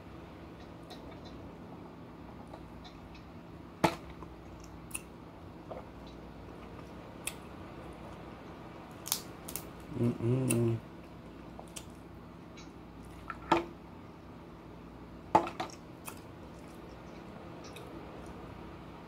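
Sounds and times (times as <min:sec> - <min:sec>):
low room hum: 0:00.0 - 0:19.0
crab shells cracking: 0:08.9 - 0:09.8.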